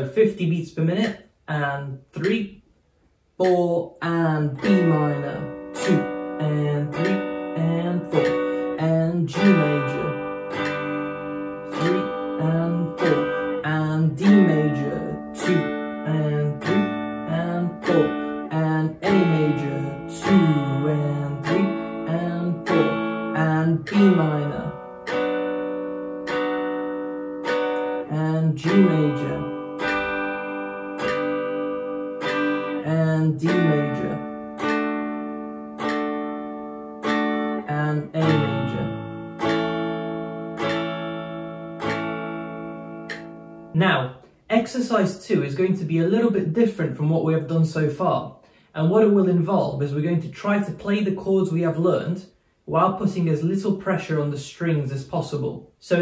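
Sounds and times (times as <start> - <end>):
clean electric guitar strumming chords: 3.4 - 47.6.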